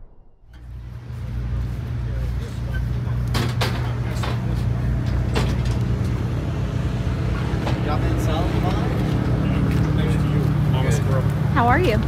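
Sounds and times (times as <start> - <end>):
vehicle engine idling: 0.6 - 12.0
quiet talking: 1.1 - 6.5.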